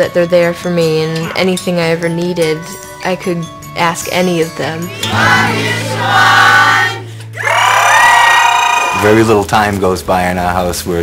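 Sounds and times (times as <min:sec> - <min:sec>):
background music: 0:00.0 - 0:11.0
group singing held notes: 0:05.0 - 0:07.1.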